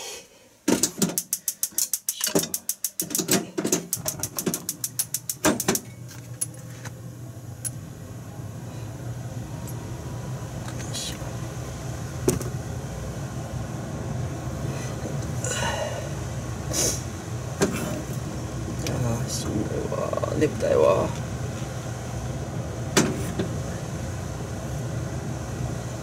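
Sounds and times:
gas igniter clicking: 0:00.8 - 0:06.5
gas flame rushing: 0:07.5 - 0:26.0.

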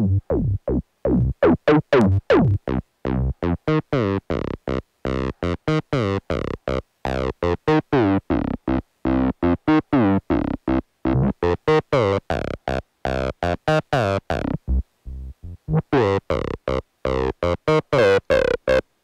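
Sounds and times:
acid bass synth line: 0:00.0 - 0:18.8.

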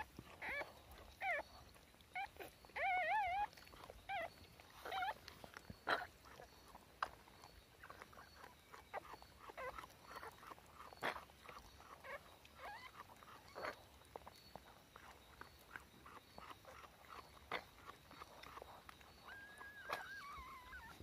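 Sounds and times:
puppy squeaking: 0:00.0 - 0:21.0.

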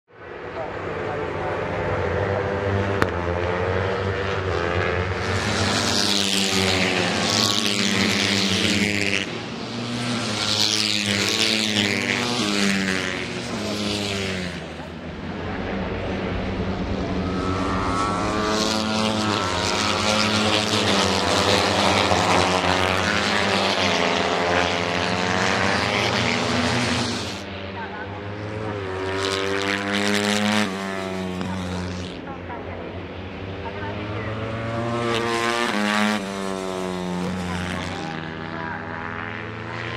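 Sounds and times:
racing motorcycles passing: 0:00.2 - 0:39.9.

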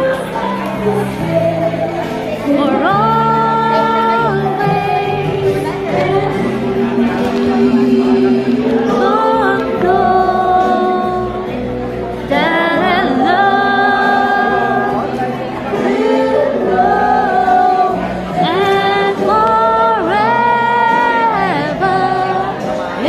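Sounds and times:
backing music: 0:00.0 - 0:23.0
woman singing: 0:00.0 - 0:23.0.

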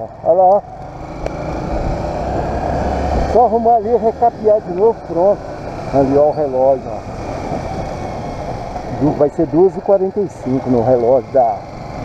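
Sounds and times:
motorcycle engine and wind: 0:00.0 - 0:12.0.

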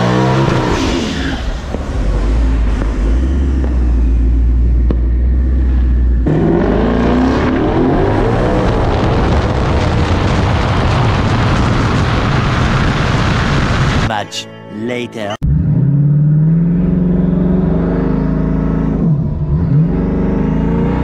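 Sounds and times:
car engine revving: 0:00.0 - 0:14.1, 0:15.4 - 0:21.0.

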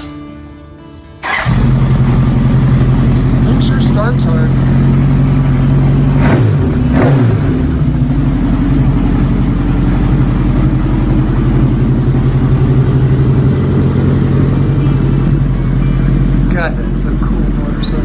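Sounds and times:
motorcycle engine idling: 0:01.2 - 0:18.0.

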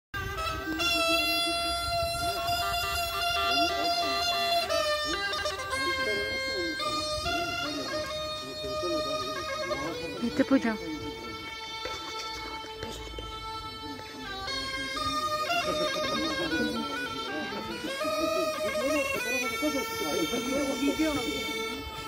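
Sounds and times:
bagpipe playing a dance tune: 0:00.2 - 0:22.0
voices: 0:00.2 - 0:22.0.

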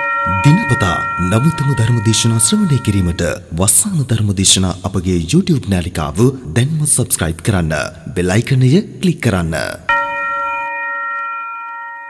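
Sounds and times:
bell-like chime ringing: 0:00.0 - 0:03.5, 0:09.9 - 0:12.0.

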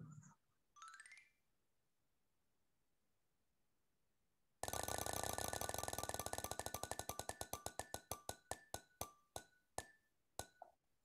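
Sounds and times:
prize wheel ticking: 0:04.6 - 0:08.3.

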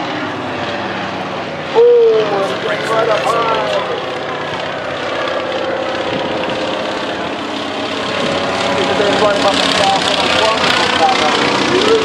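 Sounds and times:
propeller plane engine droning: 0:00.0 - 0:12.0.

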